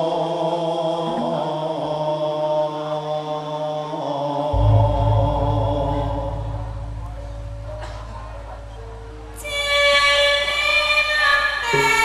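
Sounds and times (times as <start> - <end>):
deep low ringing note: 4.6 - 10.6
woman singing long held notes: 9.4 - 12.0.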